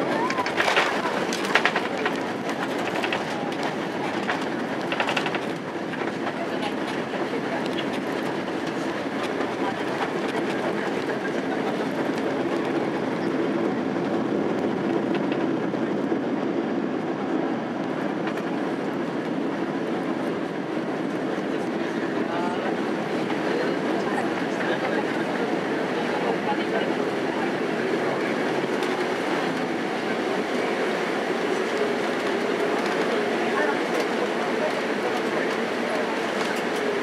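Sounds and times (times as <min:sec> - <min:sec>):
wheels rolling on runway: 0:00.0 - 0:17.0, 0:17.6 - 0:37.0
jet engines rumbling: 0:00.0 - 0:37.0.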